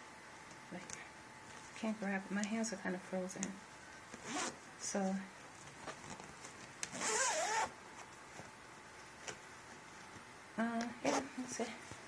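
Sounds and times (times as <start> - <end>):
zipper on fabric bag: 4.2 - 4.6, 6.9 - 7.7, 11.0 - 11.3.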